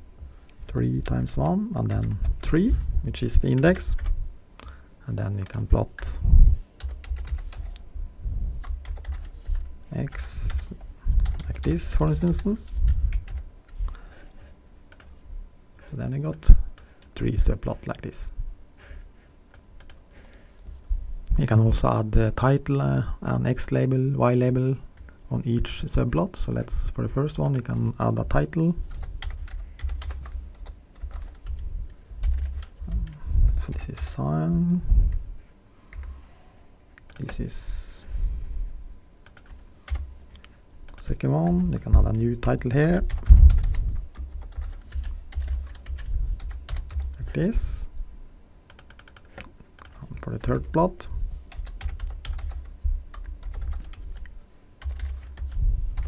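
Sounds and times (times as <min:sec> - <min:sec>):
computer keyboard typing: 0:01.3 - 0:02.5, 0:03.5 - 0:04.2, 0:06.8 - 0:07.8, 0:08.6 - 0:13.8, 0:19.8 - 0:20.0, 0:28.8 - 0:31.6, 0:32.2 - 0:34.1, 0:39.2 - 0:40.1, 0:42.5 - 0:47.4, 0:48.7 - 0:50.7, 0:51.5 - 0:56.0
computer keys and mouse clicks: 0:06.8 - 0:07.8, 0:19.5 - 0:20.0, 0:39.2 - 0:41.0, 0:48.7 - 0:50.5, 0:51.5 - 0:55.6.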